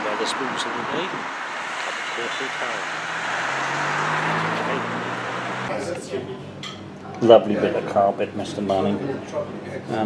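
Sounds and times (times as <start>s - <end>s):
vehicle passing: 0.0s - 5.8s.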